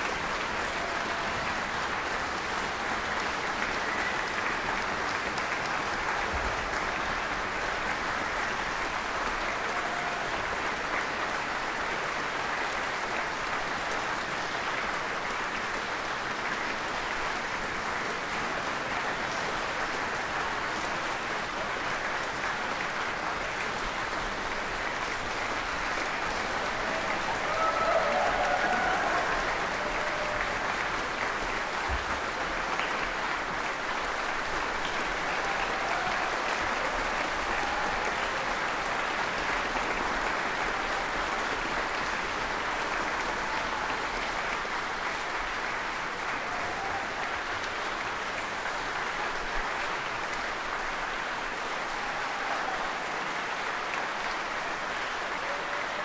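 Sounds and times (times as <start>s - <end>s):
audience applauding: 0.0s - 56.0s.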